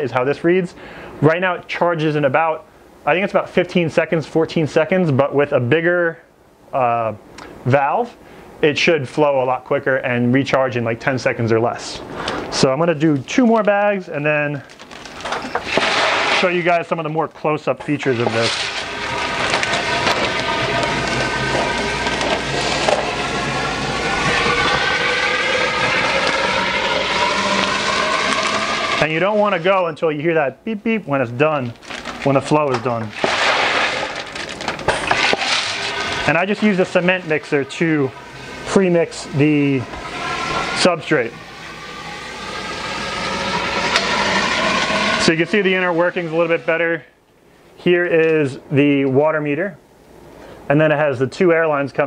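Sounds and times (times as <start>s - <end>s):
water rushing through pipes: 11.2s - 47.2s
air compressor humming and hissing: 15.0s - 30.0s, 31.4s - 47.0s.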